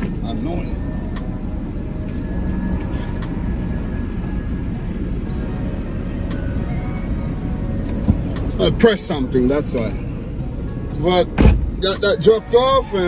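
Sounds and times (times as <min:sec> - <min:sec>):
minivan engine idling: 0:00.0 - 0:13.0.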